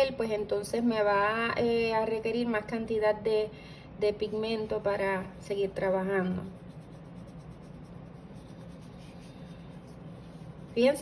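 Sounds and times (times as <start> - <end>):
steady low hum: 0.0 - 11.0
paintbrush brushing on paper: 5.3 - 11.0.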